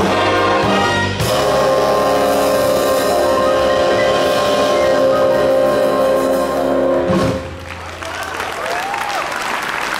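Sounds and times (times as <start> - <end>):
big band held chord: 0.0 - 7.6
audience applauding: 7.4 - 9.9.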